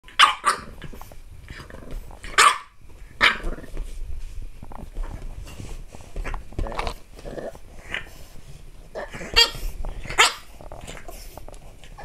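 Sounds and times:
puppy barking: 0.1s - 0.7s, 2.3s - 3.4s, 9.3s - 10.5s.

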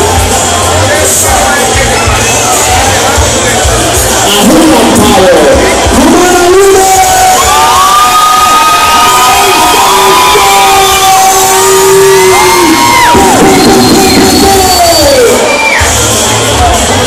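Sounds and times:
crowd cheering and whooping: 6.5s - 16.2s.

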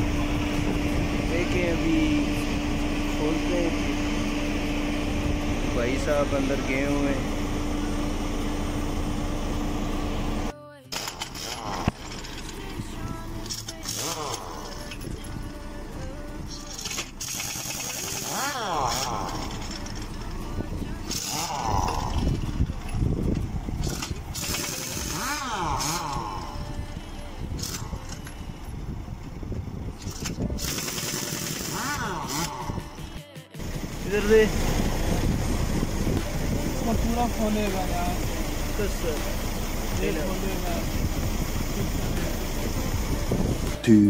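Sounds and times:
background music with singing: 10.4s - 23.6s, 25.0s - 28.9s, 31.7s - 40.0s
pneumatic impact wrench bursts: 10.9s - 12.6s, 13.4s - 15.0s, 16.7s - 20.2s, 21.1s - 22.4s, 23.8s - 26.5s, 27.6s - 28.3s, 30.0s - 32.8s.

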